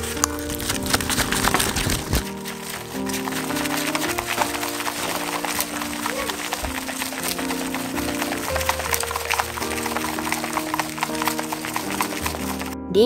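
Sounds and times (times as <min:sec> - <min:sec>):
chopsticks stirring sticky food: 0:00.0 - 0:12.8
background music with held notes: 0:00.0 - 0:13.0.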